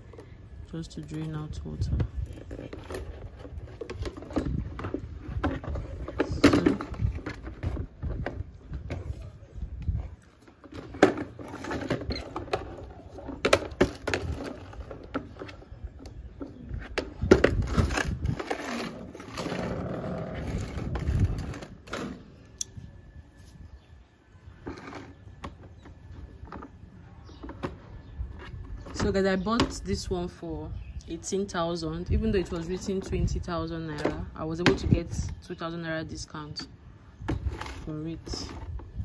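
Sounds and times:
plastic bucket rattling: 0:02.0 - 0:09.0, 0:10.5 - 0:22.1.

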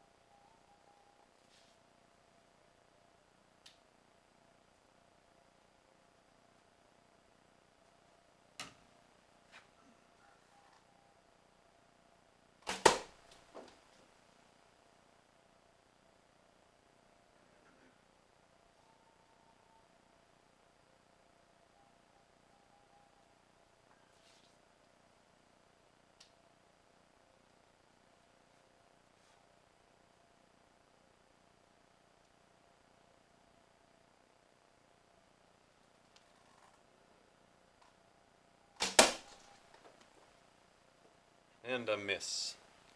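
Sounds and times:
arrow striking with sharp crack: 0:12.6 - 0:13.2, 0:38.8 - 0:39.5.

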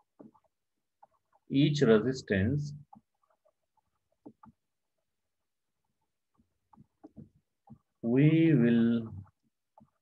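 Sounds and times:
stylus tapping on tablet screen: 0:00.0 - 0:01.5, 0:02.8 - 0:05.1, 0:05.8 - 0:08.0, 0:09.3 - 0:10.0.

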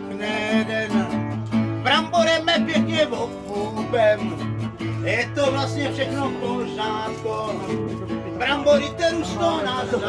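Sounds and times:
acoustic guitar strumming chords: 0:00.0 - 0:10.0
person singing folk song: 0:00.0 - 0:10.0.

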